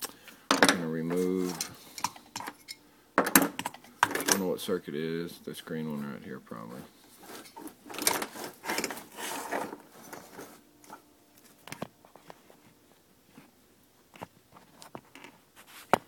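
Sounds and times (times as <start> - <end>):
plastic connector rustling and scraping: 1.0 - 2.6, 6.8 - 13.5, 14.1 - 16.0.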